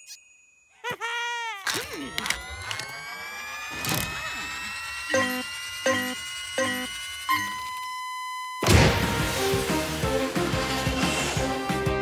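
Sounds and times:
rising whine: 1.8 - 8.8
short electronic beeps: 4.7 - 8.7.

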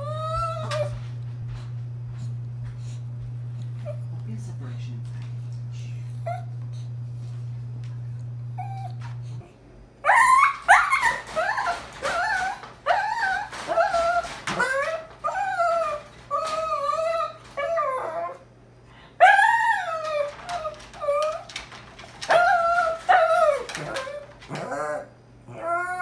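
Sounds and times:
puppy whining: 0.0 - 1.2, 3.6 - 4.1, 6.2 - 7.0, 8.4 - 18.5, 19.2 - 26.0
steady low hum: 0.0 - 10.1.

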